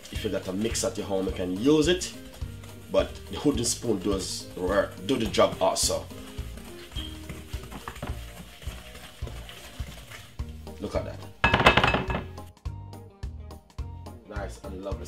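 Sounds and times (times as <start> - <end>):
wooden spoon scraping glass bowl: 0.0 - 10.4
background music: 0.0 - 15.0.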